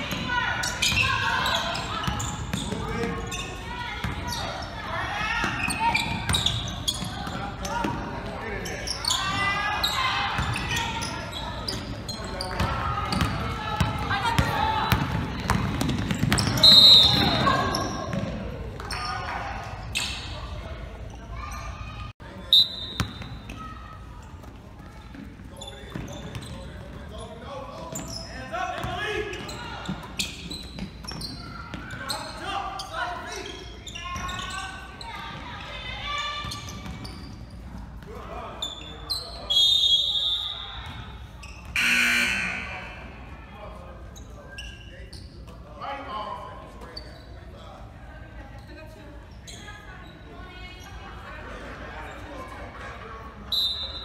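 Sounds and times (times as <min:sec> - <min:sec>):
basketball bouncing on court: 0:04.0 - 0:04.4, 0:10.3 - 0:10.8, 0:12.5 - 0:18.9, 0:36.4 - 0:37.2
referee's whistle: 0:16.4 - 0:17.9, 0:22.5 - 0:23.2, 0:38.9 - 0:40.8, 0:41.8 - 0:43.2, 0:53.5 - 0:54.0
echoing indistinct voices: 0:41.8 - 0:43.6.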